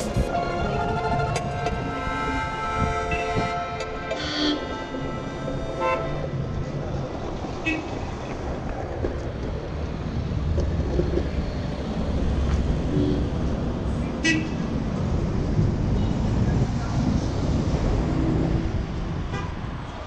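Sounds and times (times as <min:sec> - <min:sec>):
street traffic: 0:00.0 - 0:20.0
skateboard wheels rolling on asphalt: 0:06.4 - 0:13.9.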